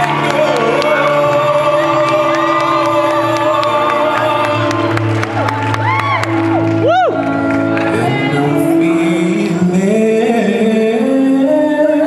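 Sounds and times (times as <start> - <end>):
live instrumental accompaniment: 0.0 - 12.0.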